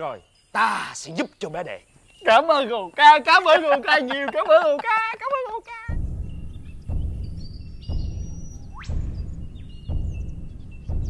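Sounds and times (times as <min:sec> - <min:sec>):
bird chirps: 0:00.0 - 0:11.0
low rumble: 0:05.9 - 0:11.0
rising whistle: 0:06.2 - 0:10.9.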